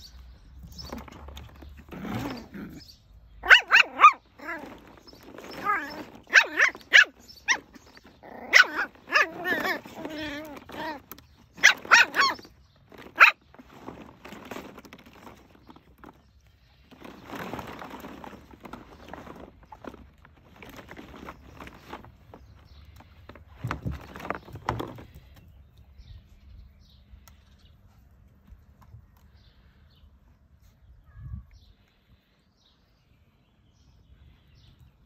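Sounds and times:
puppies barking and yapping: 0.6 - 15.7.

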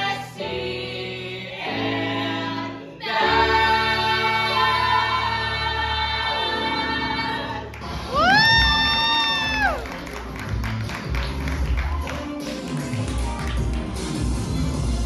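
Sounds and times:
ensemble singers holding chord: 0.0 - 7.8
audience clapping and cheering: 7.6 - 15.0
loud whooping cry: 8.1 - 9.8.

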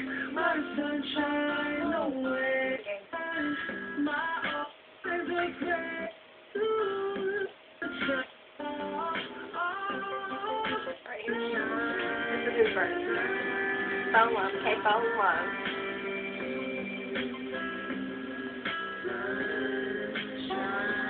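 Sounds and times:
person singing over guitar: 0.0 - 21.0.

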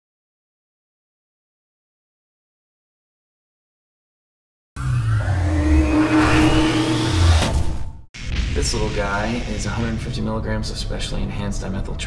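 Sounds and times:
thin whine rising in pitch: 4.8 - 8.0.

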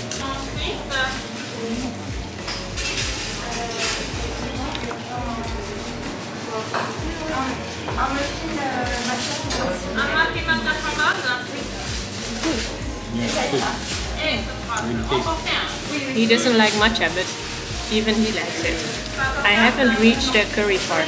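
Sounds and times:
dishes and cutlery clinking: 0.0 - 5.2, 5.8 - 10.2, 11.9 - 21.0
background voices talking: 0.0 - 21.0.

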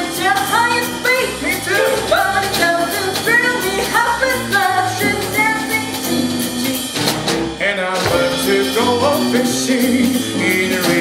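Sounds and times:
live band playing: 0.0 - 11.0
people singing: 7.6 - 11.0.

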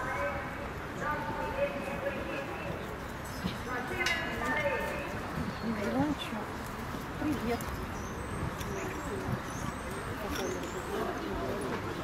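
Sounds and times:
outdoor murmur: 0.0 - 12.0.

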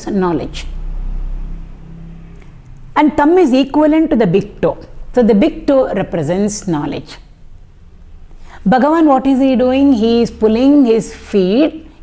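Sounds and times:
faint steady hum: 0.0 - 12.0
low rumble: 0.1 - 4.2.

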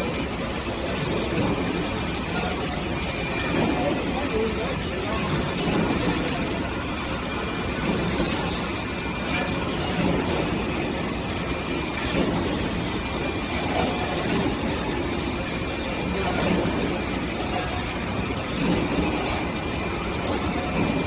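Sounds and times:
machinery running steadily: 0.0 - 21.0.

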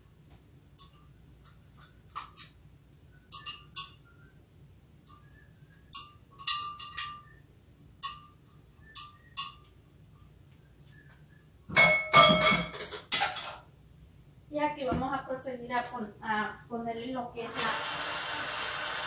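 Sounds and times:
kitchenware clinking on metal bowl: 5.9 - 7.3, 11.7 - 13.7.

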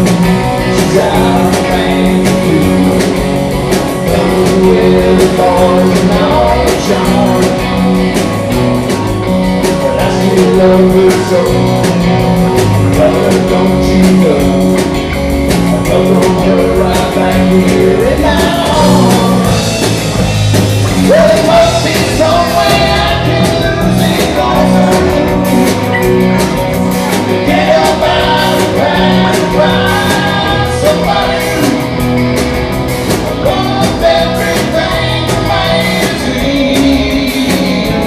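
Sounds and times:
drum kit steady beat: 0.0 - 38.0
electric guitar bending notes: 0.0 - 38.0
rock band playing: 0.0 - 38.0.

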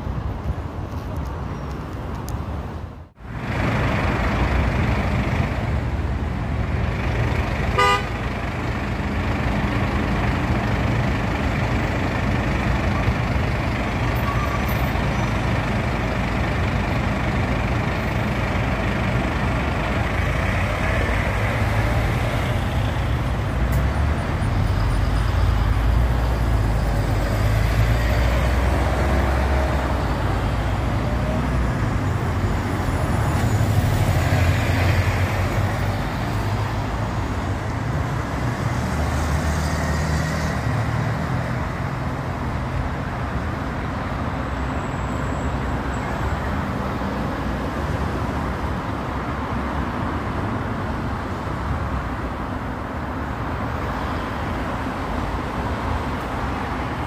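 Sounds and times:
bus engine low rumble: 0.0 - 57.0
buses and cars passing: 0.0 - 57.0
short horn toot: 7.8 - 8.1.

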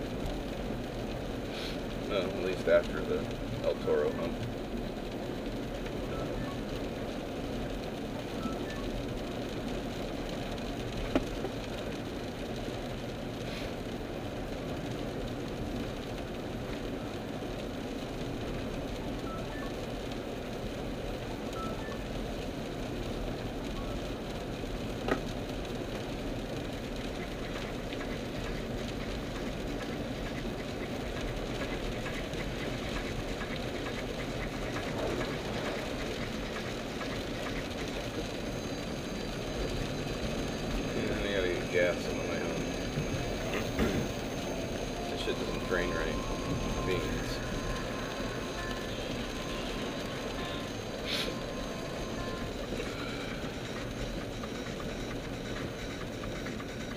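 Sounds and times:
car road and engine noise: 0.0 - 56.9
tyre spray hissing: 51.0 - 51.4.

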